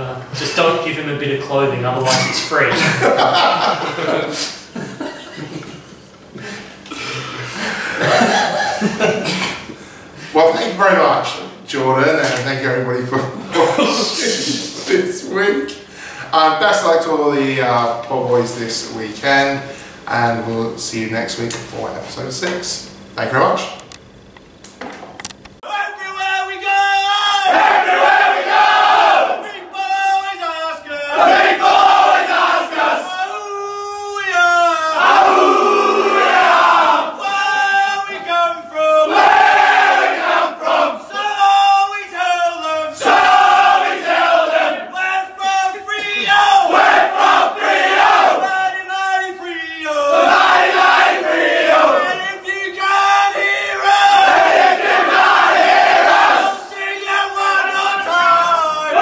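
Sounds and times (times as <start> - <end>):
men chanting: 13.4 - 15.0, 26.6 - 59.0
group shouting back: 43.0 - 48.6.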